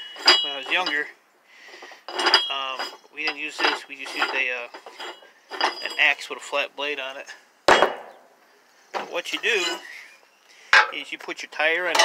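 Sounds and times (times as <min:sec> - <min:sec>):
faint hiss: 0:08.3 - 0:09.2
man speaking: 0:09.1 - 0:09.8, 0:10.9 - 0:12.0.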